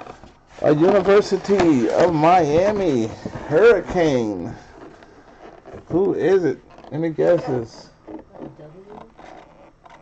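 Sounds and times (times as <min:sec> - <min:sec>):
gloved hands scraping plastic case: 0:00.0 - 0:10.0.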